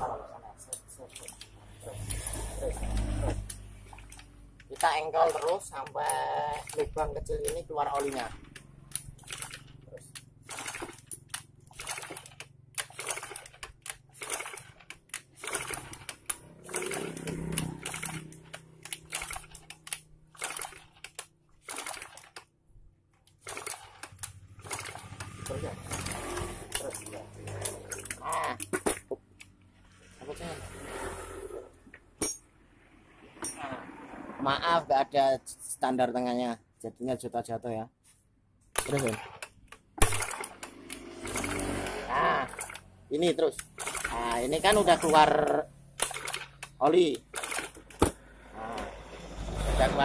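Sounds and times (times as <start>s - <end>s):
scooter engine cranking clicks: 0.6s - 22.5s, 23.2s - 29.7s, 38.8s - 48.2s.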